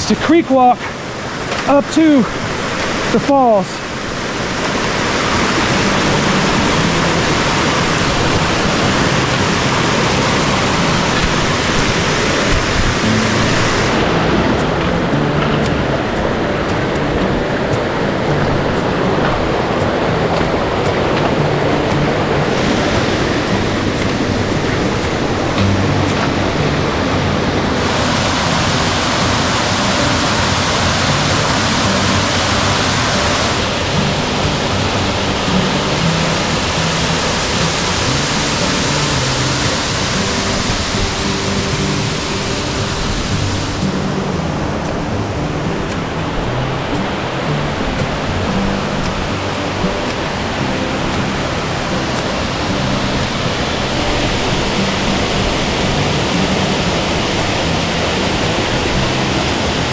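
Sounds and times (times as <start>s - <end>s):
creek rushing over boulders: 0.0s - 59.9s.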